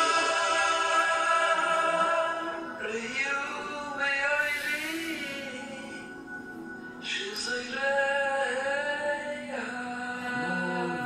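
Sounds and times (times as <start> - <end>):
recorded song playing: 0.0 - 11.0
man singing long notes: 7.2 - 11.0.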